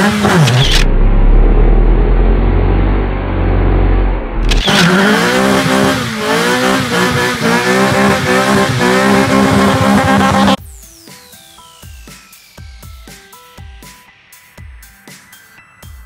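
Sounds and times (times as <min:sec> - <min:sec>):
car engine revving high: 0:00.0 - 0:10.6.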